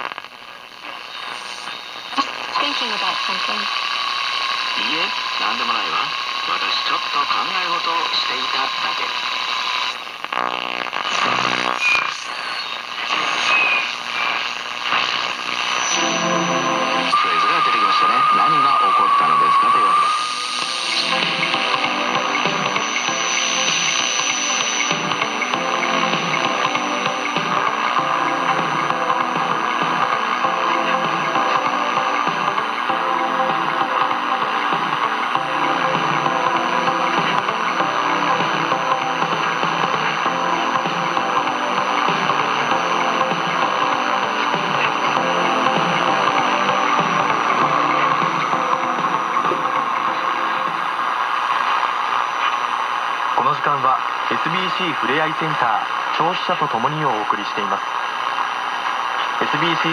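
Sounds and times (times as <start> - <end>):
broken-up radio sound: 0.0 - 59.9
music from radio station: 0.0 - 59.9
wavering radio whistle: 11.2 - 25.1.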